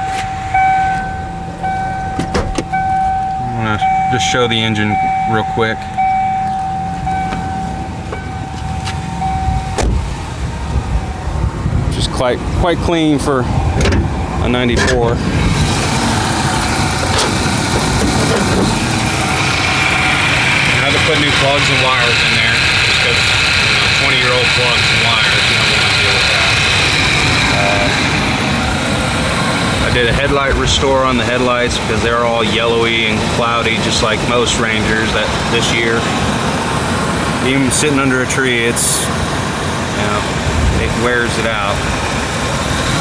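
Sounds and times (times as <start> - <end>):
truck door shutting: 0.0 - 3.4, 5.9 - 10.2, 13.7 - 15.1, 17.0 - 19.0
electronic warning tone: 0.0 - 9.9, 27.2 - 28.1
truck engine idling: 0.0 - 43.0.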